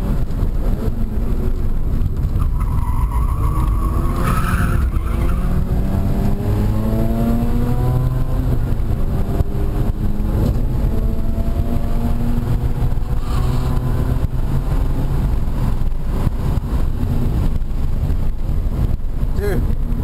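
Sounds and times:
tires squealing: 2.2s - 6.0s
rotary engine revving: 2.7s - 15.0s.

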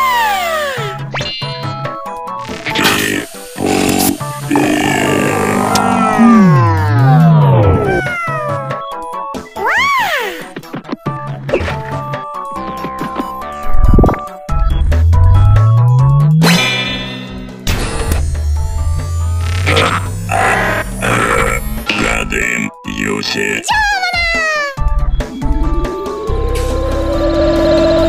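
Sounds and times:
cartoon background music: 0.0s - 28.0s
cartoon robot grunting: 2.6s - 8.5s, 19.6s - 23.6s
high-pitched voiced exclamation: 4.5s - 8.6s, 23.0s - 24.8s.

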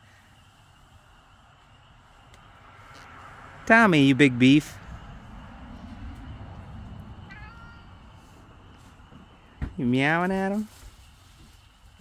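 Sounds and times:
cat meowing: 7.3s - 8.2s.

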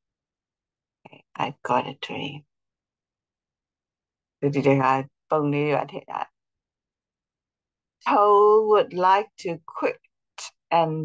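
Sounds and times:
woman's voice: 1.1s - 2.4s, 4.9s - 6.2s, 8.1s - 11.0s.

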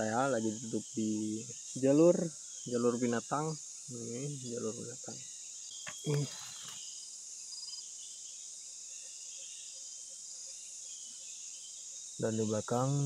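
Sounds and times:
insect chorus drone: 0.0s - 13.0s.

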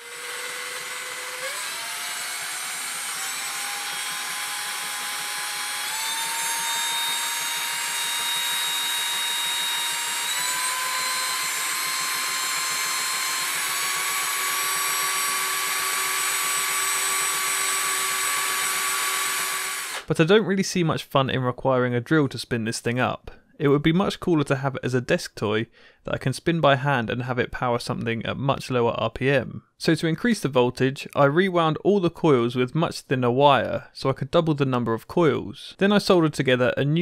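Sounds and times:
electric drill motor whine: 0.0s - 20.1s.

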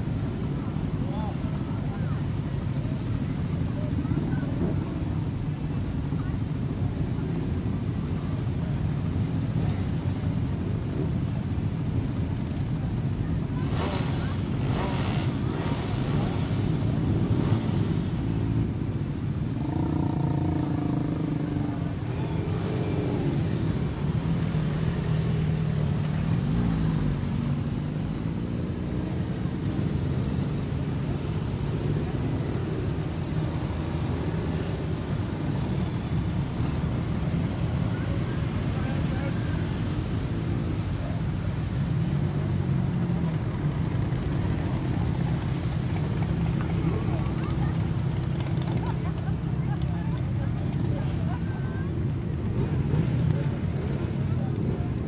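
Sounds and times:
motorcycles revving: 0.0s - 55.0s
vehicle engines rumbling past: 0.0s - 55.0s.

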